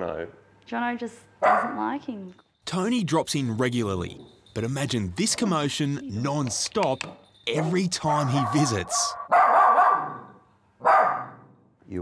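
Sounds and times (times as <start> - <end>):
small dog barking: 1.4 - 1.9, 7.6 - 11.5.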